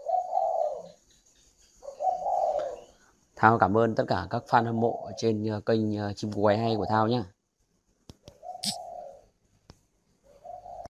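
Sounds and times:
dove cooing: 0:00.0 - 0:03.1, 0:04.4 - 0:05.5, 0:08.2 - 0:09.4, 0:10.2 - 0:10.9.

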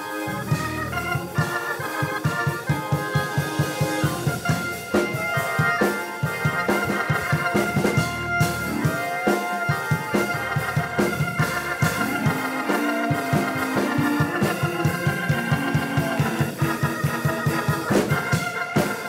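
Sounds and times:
fast steady beat: 0:00.0 - 0:19.0
organ holding sustained chords: 0:00.0 - 0:19.0.

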